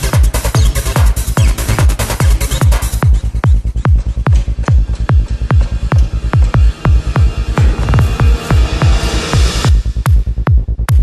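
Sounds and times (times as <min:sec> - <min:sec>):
dark electronic dance music: 0:00.0 - 0:11.0
fast kick drum thuds: 0:00.0 - 0:11.0
low bass hum: 0:01.2 - 0:11.0.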